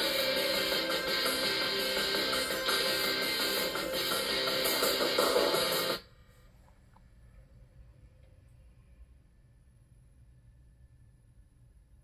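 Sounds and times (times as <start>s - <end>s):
faint background hiss and hum: 6.0s - 12.0s.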